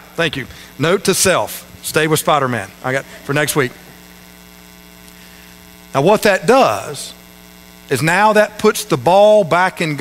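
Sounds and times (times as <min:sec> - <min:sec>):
man speaking: 0:00.0 - 0:04.0, 0:05.9 - 0:07.3, 0:07.9 - 0:10.0
electrical mains hum: 0:00.0 - 0:10.0.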